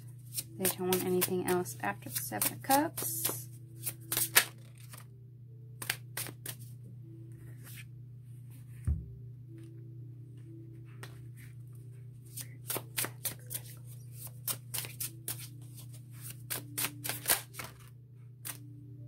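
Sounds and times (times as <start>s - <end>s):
soft background music: 0.0s - 19.0s
cards being shuffled: 0.2s - 5.0s, 5.8s - 6.7s, 12.2s - 18.7s.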